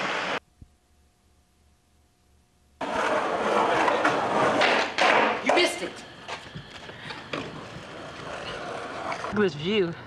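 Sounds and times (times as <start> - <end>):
faint steady hum: 0.0 - 10.0
skateboard wheels rolling on concrete: 2.8 - 9.8.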